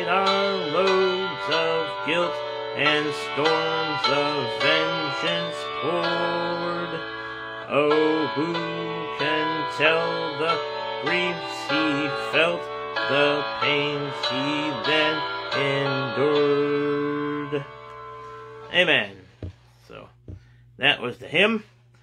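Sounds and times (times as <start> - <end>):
man singing hymn solo: 0.0 - 17.8.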